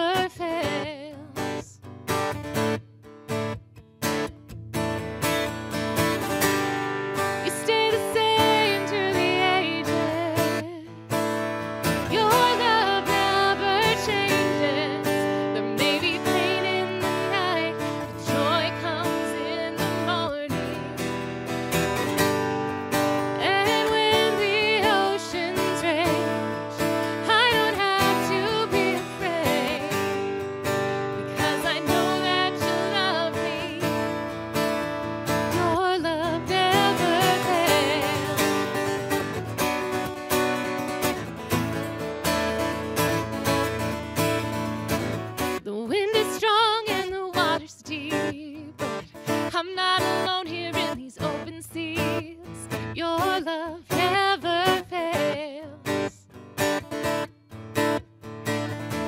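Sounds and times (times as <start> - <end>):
acoustic guitar strumming: 0.0 - 59.0
woman singing worship song: 7.4 - 10.9, 12.1 - 20.6, 23.4 - 26.4, 27.1 - 30.0, 31.2 - 34.0, 35.5 - 38.4, 45.7 - 48.7, 49.5 - 55.8.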